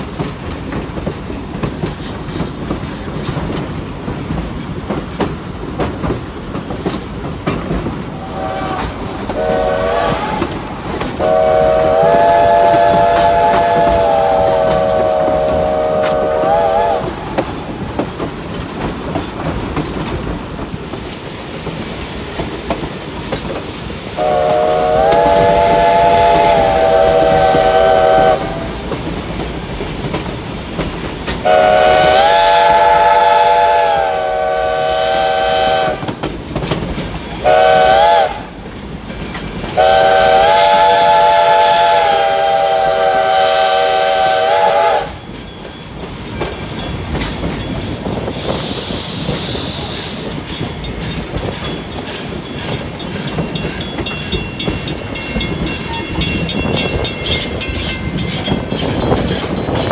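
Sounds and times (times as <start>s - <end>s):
train cars rumbling on rails: 0.0s - 59.9s
steam whistle blasts: 8.2s - 10.6s, 11.2s - 17.3s, 24.2s - 28.8s, 31.4s - 36.1s, 37.4s - 38.6s, 39.8s - 45.2s, 48.4s - 50.4s.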